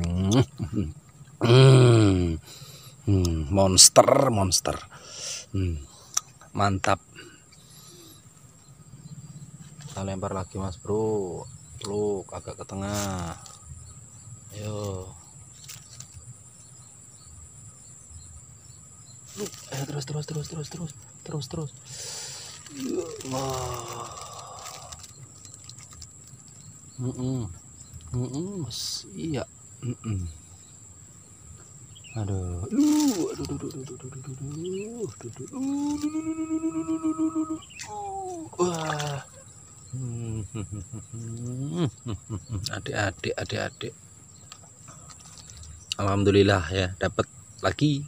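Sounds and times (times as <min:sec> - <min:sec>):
crickets droning: 0:00.0 - 0:48.0
insects trilling: 0:00.0 - 0:48.0
low background hiss: 0:00.0 - 0:48.0
faint ticks: 0:06.0 - 0:06.6, 0:44.4 - 0:46.1.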